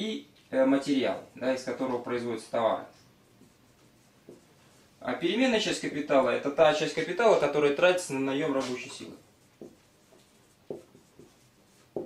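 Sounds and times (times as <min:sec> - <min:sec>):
marker writing on whiteboard: 0:03.0 - 0:05.0, 0:08.4 - 0:12.0.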